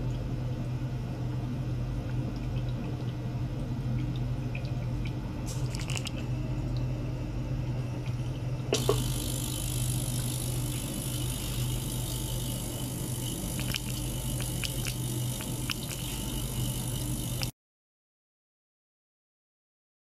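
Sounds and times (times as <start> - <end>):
ultrasonic cleaner humming: 5.3 - 17.5.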